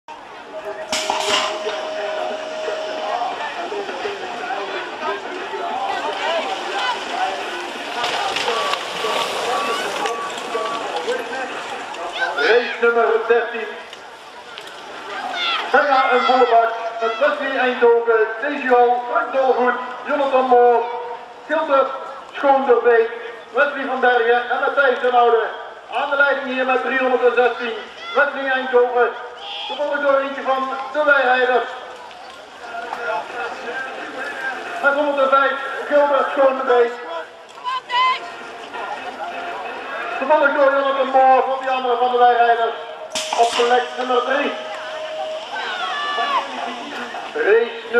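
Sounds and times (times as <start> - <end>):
outdoor background noise: 0.0 - 47.9
man speaking: 40.2 - 44.7.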